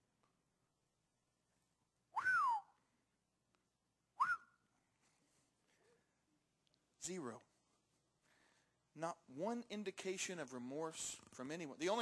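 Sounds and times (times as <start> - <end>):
high-pitched whistle-like sounds: 2.1 - 2.8, 4.2 - 4.7.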